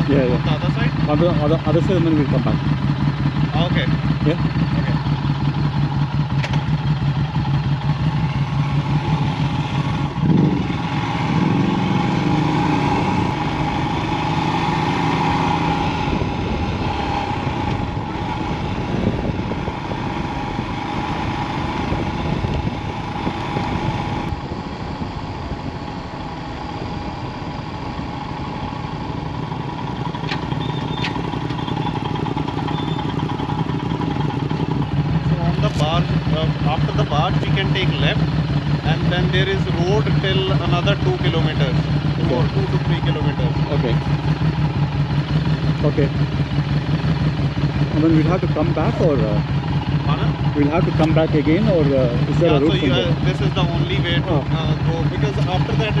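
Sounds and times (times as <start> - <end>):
motorcycle engine pulling away: 0.0 - 56.0
motorcycle engines idling: 0.0 - 56.0
wind noise on microphone: 15.8 - 28.0.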